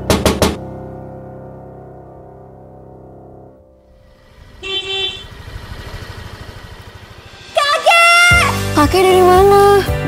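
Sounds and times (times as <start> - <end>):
scooter engine running: 4.0 - 7.6
scooter horn beep: 4.5 - 5.6.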